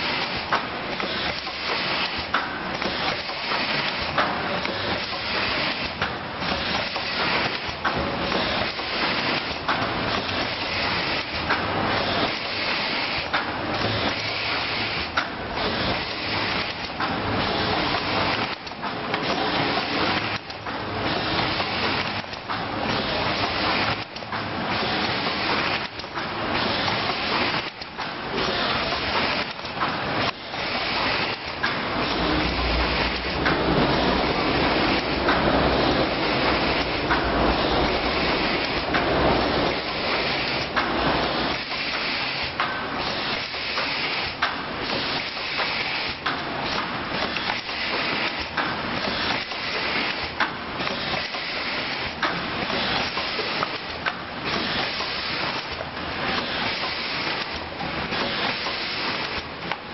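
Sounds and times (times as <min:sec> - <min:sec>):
cartoning machine clatter: 0:00.0 - 0:59.9.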